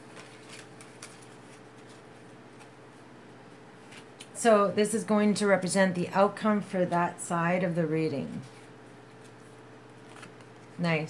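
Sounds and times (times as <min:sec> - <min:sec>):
low background hum: 0:00.0 - 0:11.0
cards snapping and sliding: 0:10.0 - 0:10.5.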